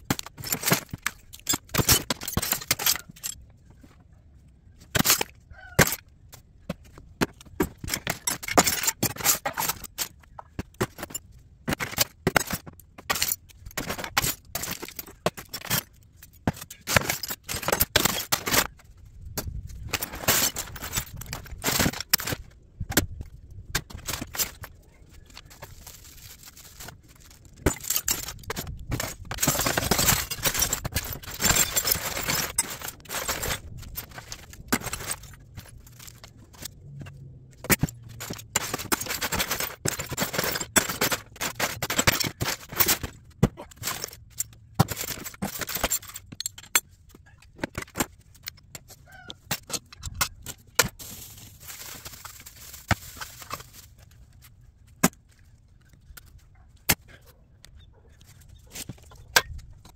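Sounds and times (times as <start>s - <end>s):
metal scrap clinking and rattling: 0.0s - 4.0s, 4.8s - 57.2s.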